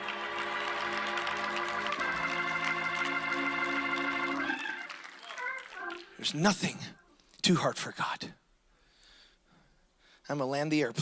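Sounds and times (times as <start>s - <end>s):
electric organ chord: 0.0s - 4.9s
person preaching: 5.2s - 8.4s.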